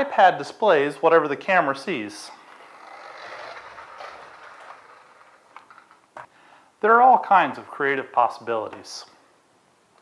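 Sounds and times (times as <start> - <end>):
toy car electric motor whirring: 2.4 - 6.1.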